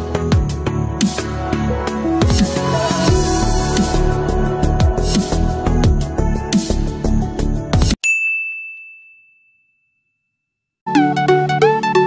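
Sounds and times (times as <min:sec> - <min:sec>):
bright bell-like ding: 0:08.0 - 0:10.4.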